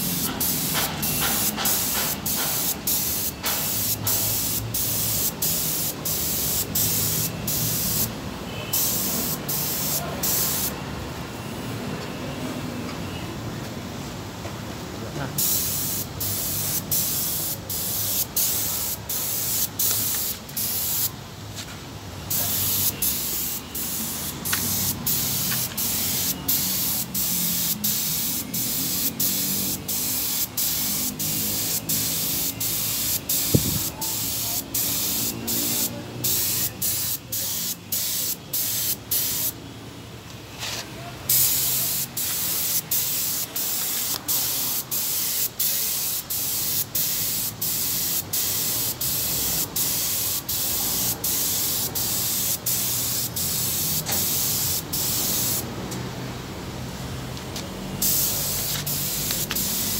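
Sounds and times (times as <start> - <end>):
spray gun hissing: 0.0 - 8.1, 8.7 - 10.8, 15.4 - 21.1, 22.3 - 39.6, 41.3 - 55.7, 57.9 - 59.9.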